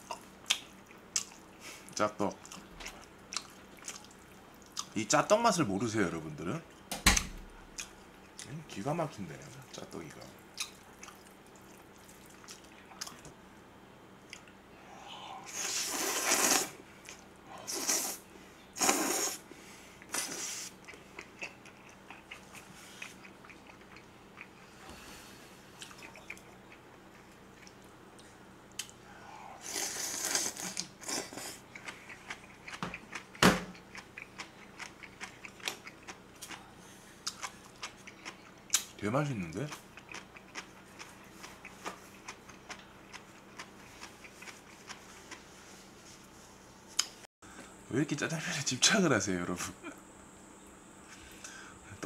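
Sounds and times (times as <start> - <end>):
chewing and mouth clicks: 0.1 - 1.5, 2.4 - 5.0, 10.5 - 13.4, 14.2 - 14.6, 20.0 - 24.7, 25.8 - 29.0, 30.3 - 45.5
person slurping noodles: 15.3 - 16.8, 17.6 - 18.2, 18.8 - 19.4, 29.4 - 31.6.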